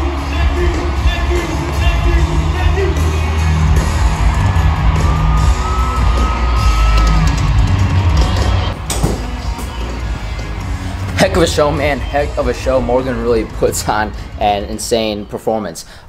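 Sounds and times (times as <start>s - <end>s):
crowd yelling and whooping: 0.0s - 13.6s
loud live country music: 0.0s - 15.1s.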